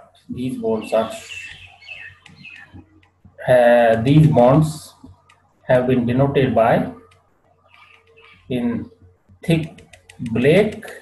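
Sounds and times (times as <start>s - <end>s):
speech: 0.3s - 1.6s, 3.4s - 5.0s, 5.7s - 7.0s, 8.5s - 11.0s
high chirps: 0.7s - 5.5s, 7.0s - 10.6s.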